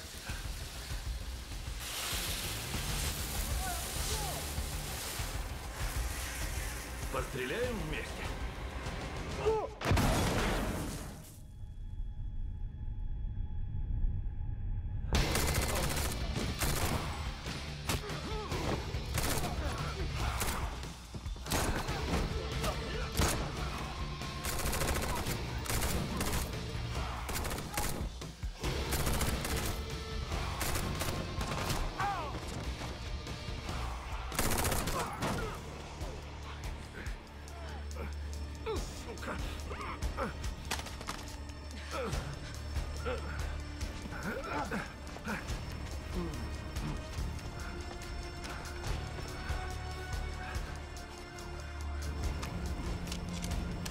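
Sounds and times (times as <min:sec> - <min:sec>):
action music: 0:00.0 - 0:53.9
rapid gunfire: 0:15.2 - 0:18.1, 0:19.0 - 0:20.8, 0:23.0 - 0:31.9, 0:34.2 - 0:35.4.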